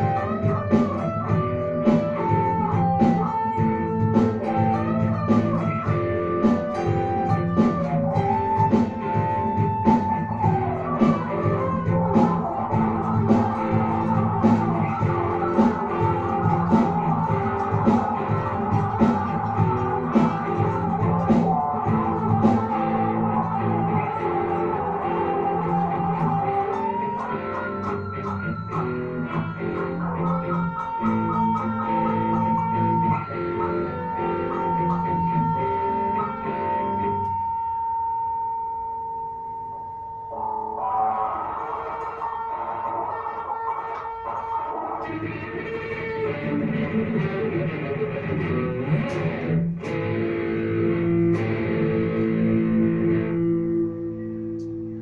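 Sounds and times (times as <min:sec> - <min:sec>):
looped backing track: 0:00.0 - 0:39.0, 0:40.3 - 0:55.0
electric guitar playing: 0:00.0 - 0:55.0.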